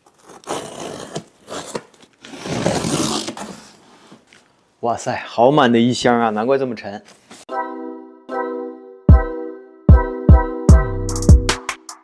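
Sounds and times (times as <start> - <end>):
cardboard box scraping and rustling: 0.0 - 4.2.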